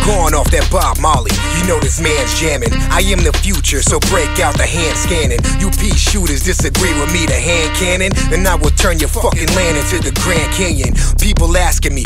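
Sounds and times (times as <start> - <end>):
bass-heavy hip hop beat: 0.0 - 12.0
vocals over a beat: 0.0 - 12.0.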